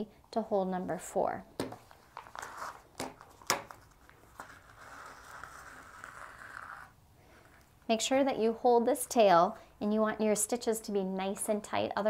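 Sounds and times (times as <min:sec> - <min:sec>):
thread rasping through paper: 0:02.1 - 0:07.6.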